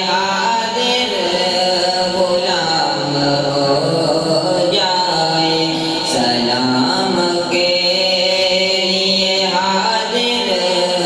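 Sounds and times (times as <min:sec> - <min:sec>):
young man chanting: 0:00.0 - 0:11.0.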